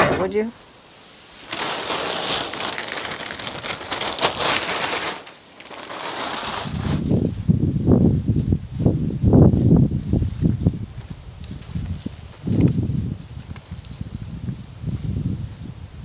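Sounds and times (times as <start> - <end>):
dry straw crackling and rustling: 0.6 - 7.4, 8.3 - 15.7.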